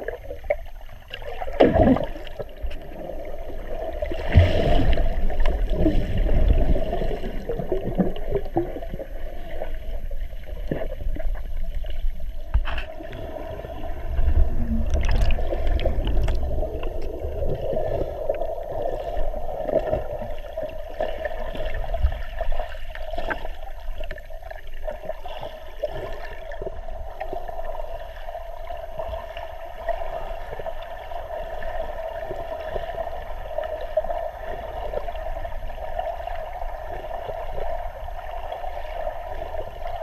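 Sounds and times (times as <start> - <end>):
underwater rumble of water: 0.0 - 40.0
small clicks and gurgles: 10.7 - 13.3, 14.6 - 18.5
bubbling blips: 14.3 - 16.6.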